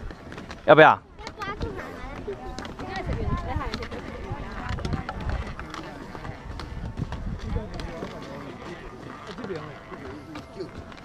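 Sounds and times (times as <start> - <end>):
footsteps on bridge deck: 0.0 - 11.0
people talking: 1.2 - 6.5.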